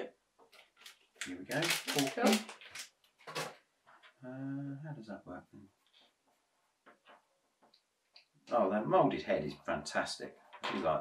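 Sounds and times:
plastic bag crinkling: 0:00.5 - 0:03.6.

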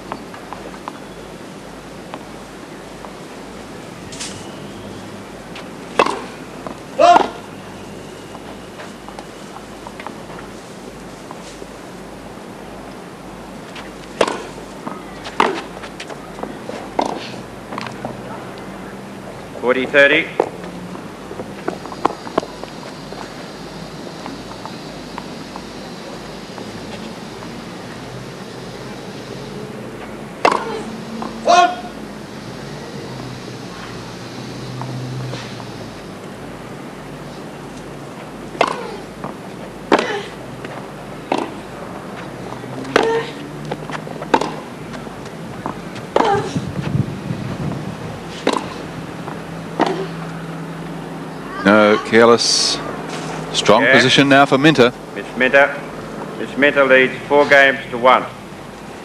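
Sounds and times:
racket hitting tennis ball: 0:05.9 - 0:06.4, 0:07.0 - 0:07.5, 0:13.8 - 0:17.8, 0:30.4 - 0:32.0, 0:38.5 - 0:46.8, 0:48.3 - 0:50.2.

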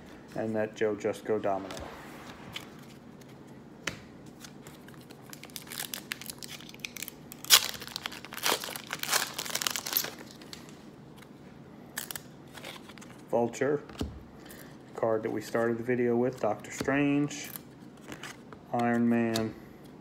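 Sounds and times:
foil wrapper crinkling and tearing: 0:04.9 - 0:10.4.

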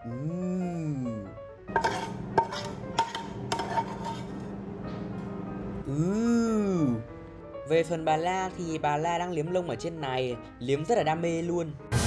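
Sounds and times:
background music: 0:00.0 - 0:12.0
metal spatula scraping frying pan: 0:01.7 - 0:04.5.

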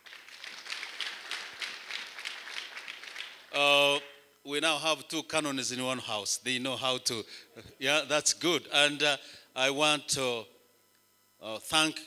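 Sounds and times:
crowd applauding: 0:00.0 - 0:03.6.

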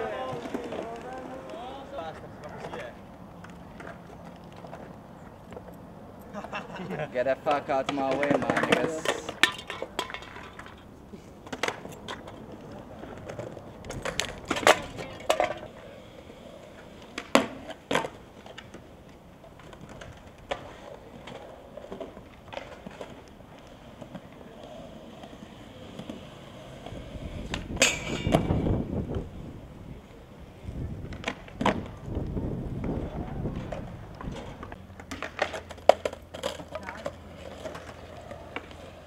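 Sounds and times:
skateboard clacks: 0:00.0 - 0:39.0
skateboard wheels rolling on concrete: 0:00.0 - 0:39.0.

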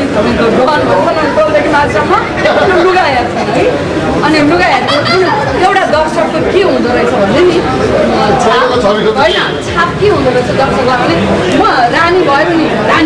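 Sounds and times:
group of people chattering: 0:00.0 - 0:13.0.

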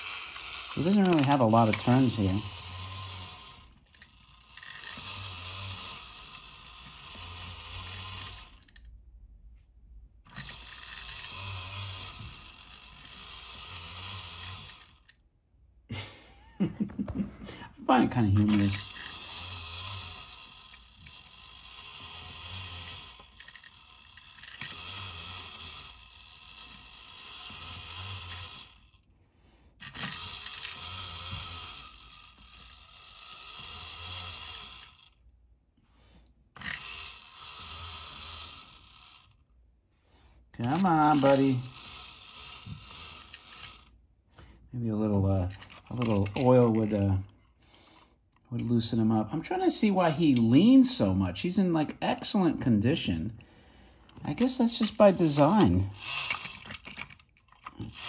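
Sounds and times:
clockwork toy mechanism running: 0:00.0 - 0:08.9, 0:10.3 - 0:15.2, 0:18.1 - 0:29.1, 0:29.7 - 0:35.2, 0:36.6 - 0:39.4, 0:40.6 - 0:44.0, 0:45.0 - 0:47.3, 0:54.0 - 0:58.0.

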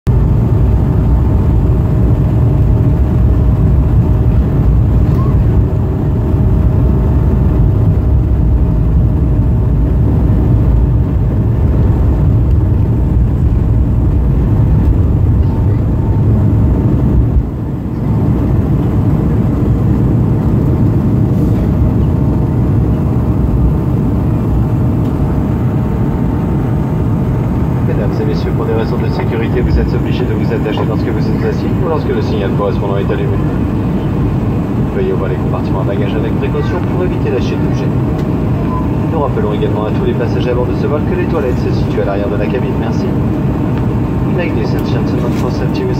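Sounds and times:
heavy low rumble: 0:00.0 - 0:45.9
jet engine whine: 0:00.1 - 0:45.9.

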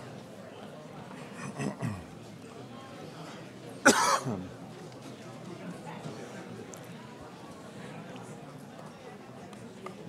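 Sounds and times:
murmur of people: 0:00.0 - 0:10.0
loud cough: 0:01.4 - 0:02.1, 0:03.8 - 0:04.4.

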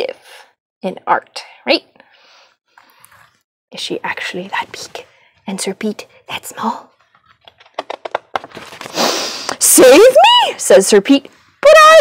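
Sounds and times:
pages turning: 0:06.9 - 0:09.6.

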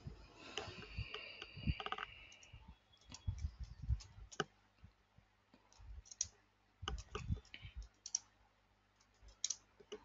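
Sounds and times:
faint keyboard typing: 0:00.4 - 0:10.0.

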